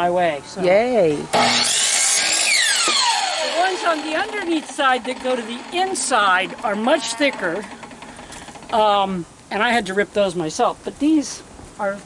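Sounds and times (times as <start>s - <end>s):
miter saw cutting wood: 1.3s - 8.8s
saw motor winding down: 1.3s - 8.9s.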